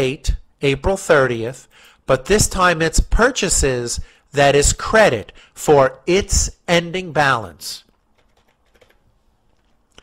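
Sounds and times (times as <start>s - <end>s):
faint keyboard typing: 7.8s - 10.0s.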